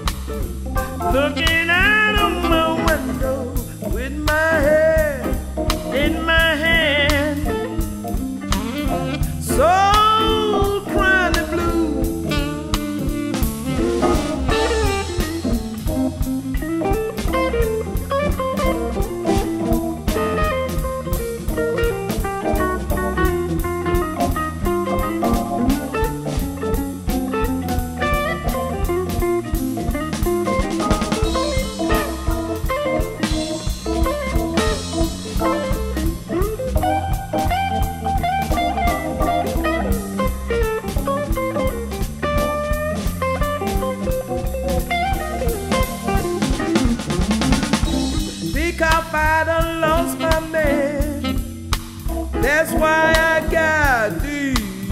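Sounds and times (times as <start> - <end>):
blues band instrumental: 0.0 - 54.9.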